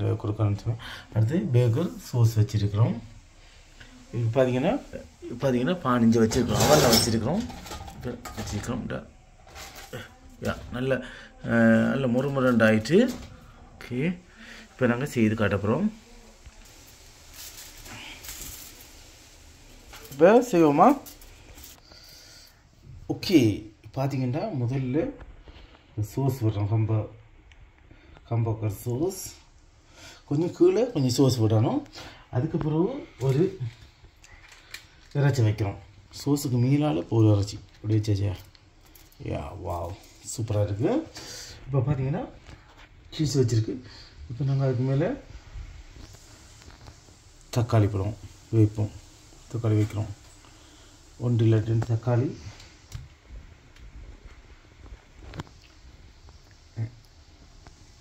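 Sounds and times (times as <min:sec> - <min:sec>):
dishes and pans clattering: 0:06.2 - 0:08.9.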